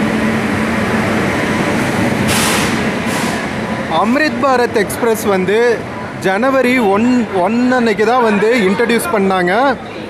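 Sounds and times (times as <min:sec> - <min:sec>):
train coaches rumbling: 0:00.0 - 0:10.0
short air hisses: 0:02.2 - 0:03.6.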